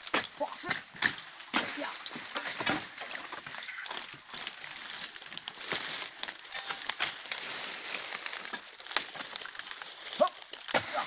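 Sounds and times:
dry fronds rustling and crackling: 0.0s - 11.0s.

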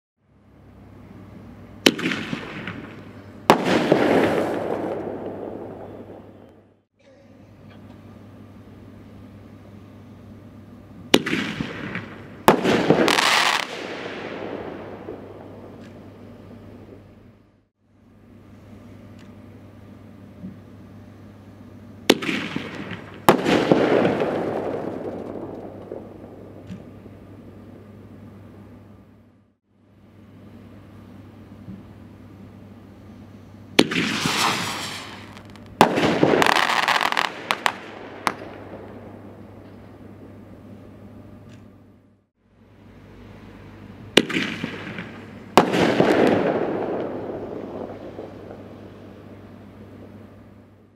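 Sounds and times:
firework bursting with a bang: 1.8s - 6.1s, 11.1s - 14.3s, 22.1s - 26.9s, 33.8s - 38.6s, 44.2s - 48.7s
firework crackling: 1.8s - 6.5s, 11.1s - 17.0s, 22.1s - 27.6s, 33.8s - 39.6s, 43.4s - 50.2s
firework hiss rising: 33.8s - 38.4s
firework shell bursting: 33.8s - 38.6s.

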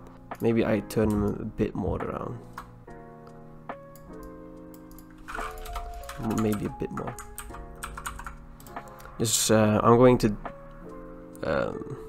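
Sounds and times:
keyboard and mouse clicking: 0.4s - 1.4s, 3.9s - 9.1s.

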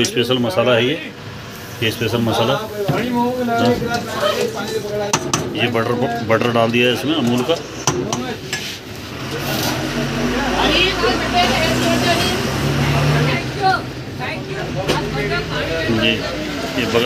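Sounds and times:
people chattering: 0.0s - 17.0s
vehicle engine humming: 0.9s - 17.0s.

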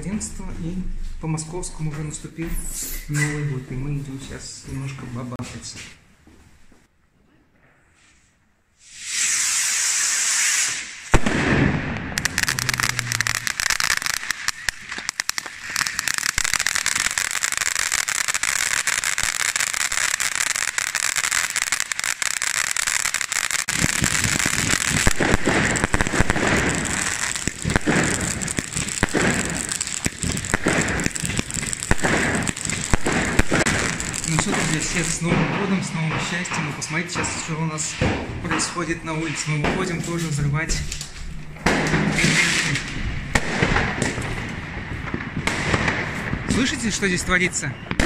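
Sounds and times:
fireworks hissing: 8.8s - 35.4s
fireworks crackling: 8.8s - 48.0s
heavy fireworks bangs: 9.6s - 40.8s, 41.5s - 48.0s.

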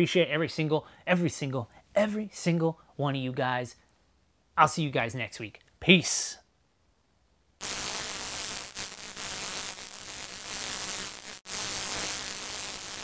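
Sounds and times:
harsh buzzing static: 7.6s - 13.0s.

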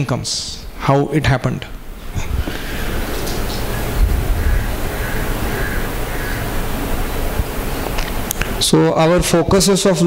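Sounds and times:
microphone hiss and rumble: 0.0s - 10.0s.

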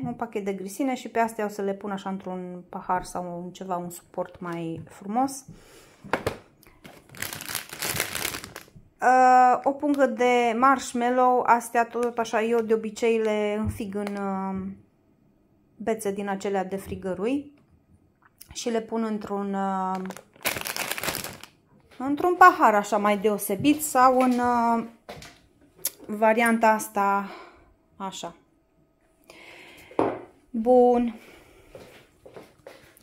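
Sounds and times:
plastic bag crackling: 6.7s - 8.8s, 19.8s - 21.6s.

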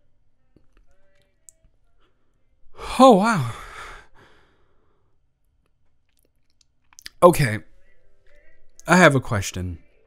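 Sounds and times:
man exhaling breathily: 2.8s - 5.0s.

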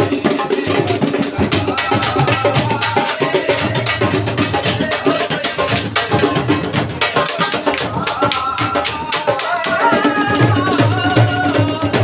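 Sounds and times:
dhol drums playing fast rhythm: 0.0s - 12.0s.

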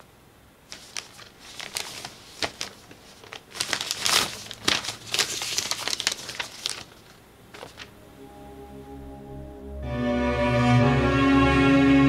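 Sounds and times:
paper crinkling and rustling: 0.7s - 7.9s.

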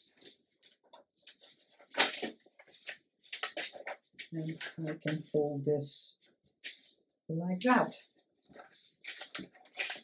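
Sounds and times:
paper rustling: 0.0s - 5.4s, 8.2s - 10.0s.

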